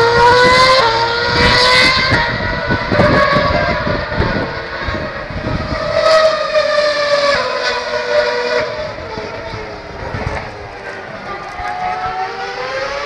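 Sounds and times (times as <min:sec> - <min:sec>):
racing car engine screaming: 0:00.0 - 0:13.0.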